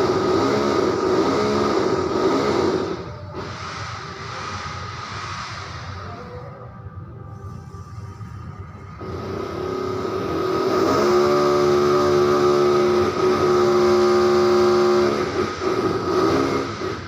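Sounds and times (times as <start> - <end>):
motor running: 9.0 - 17.0.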